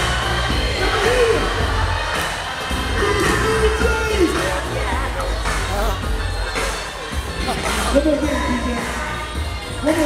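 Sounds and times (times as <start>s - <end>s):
heavy bass: 0.0s - 10.0s
live music through pa: 0.0s - 10.0s.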